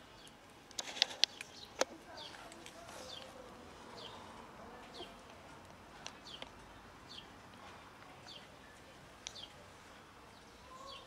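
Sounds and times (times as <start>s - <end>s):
bird chirping: 0.0s - 4.3s, 6.1s - 7.4s, 8.2s - 11.0s.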